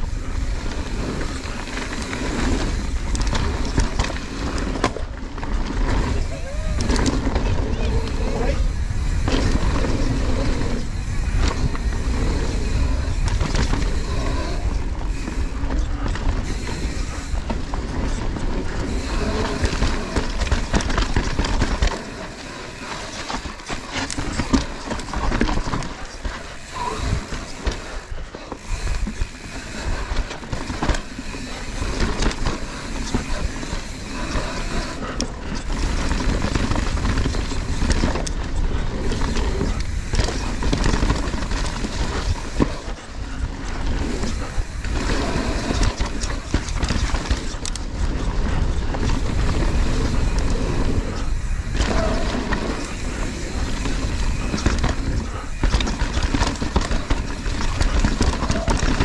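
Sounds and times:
bike chain rattling: 0.0s - 59.0s
bike tyres on dirt: 0.0s - 59.0s
wind rumbling on microphone: 0.0s - 59.0s.

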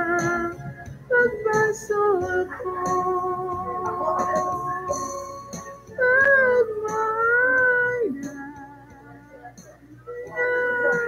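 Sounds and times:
person singing long high note: 10.1s - 11.0s.

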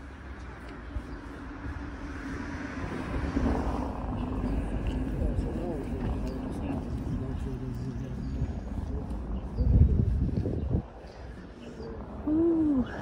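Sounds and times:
road traffic rumble: 0.0s - 13.0s
people talking: 4.2s - 10.8s, 11.6s - 13.0s.

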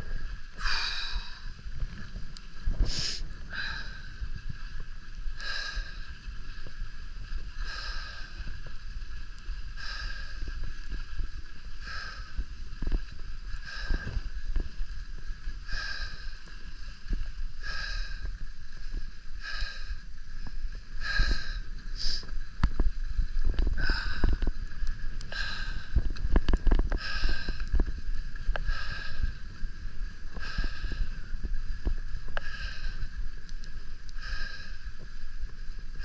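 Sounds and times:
skis swishing on snow: 0.0s - 36.0s
wind on microphone: 0.0s - 36.0s.

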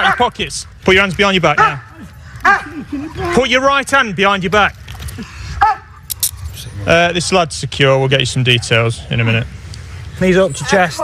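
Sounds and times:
handcuffs clinking: 6.0s - 6.6s.

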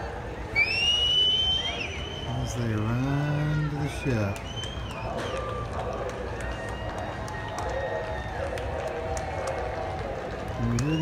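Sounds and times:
crowd noise: 0.0s - 11.0s
person whistling long note: 0.6s - 2.4s.

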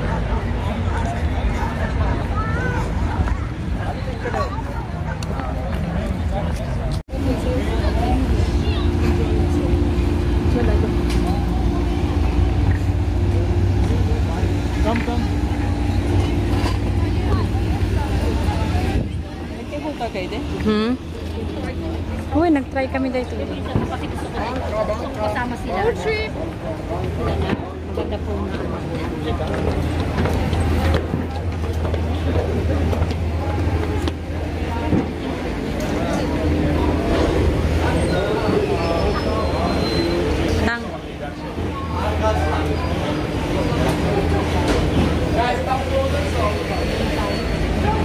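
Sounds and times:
low machinery hum: 0.0s - 48.0s
people talking: 0.0s - 48.0s
low rumble and hum: 7.1s - 19.8s.

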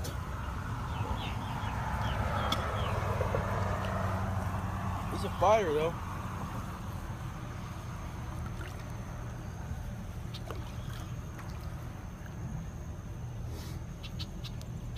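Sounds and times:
steady low hum: 0.0s - 14.9s
water lapping and splashing: 5.9s - 13.2s
soft drips: 7.6s - 12.6s.

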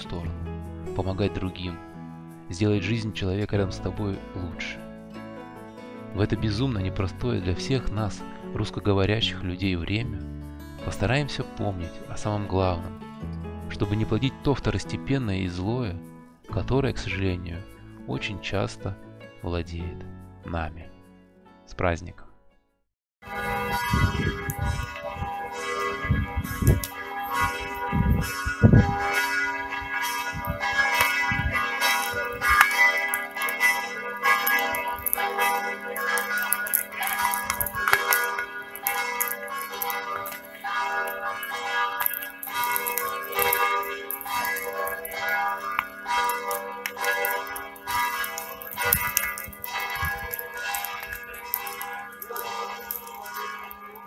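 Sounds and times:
church bells ringing: 0.0s - 8.8s, 10.8s - 15.8s, 23.2s - 54.0s.

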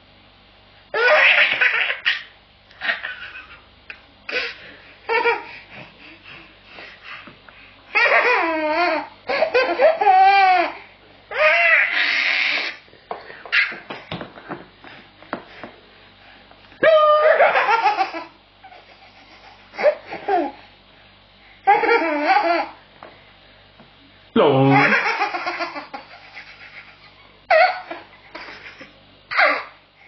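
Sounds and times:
baby belly-laughing: 1.0s - 5.5s, 8.0s - 12.8s, 21.7s - 22.8s, 24.7s - 29.8s.

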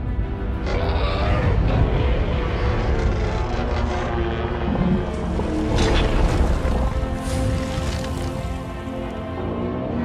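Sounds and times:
dramatic orchestral score: 0.0s - 10.0s
low rumbling effects: 0.0s - 10.0s.

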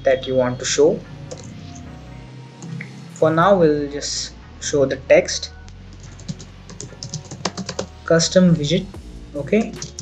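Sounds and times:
keyboard typing: 1.2s - 2.0s, 5.9s - 8.0s, 9.5s - 10.0s.

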